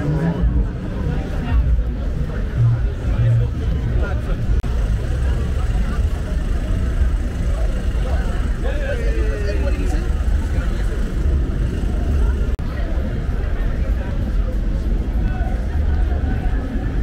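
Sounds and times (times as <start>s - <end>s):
passers-by talking: 0.0s - 17.0s
traffic on wet road: 4.4s - 16.9s.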